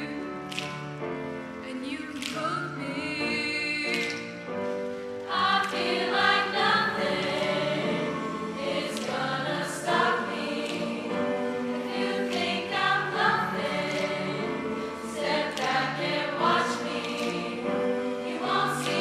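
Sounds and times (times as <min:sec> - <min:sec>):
finger snaps: 0:00.2 - 0:01.2, 0:02.1 - 0:02.6, 0:03.4 - 0:05.8, 0:15.2 - 0:16.0
choir singing: 0:05.2 - 0:19.0.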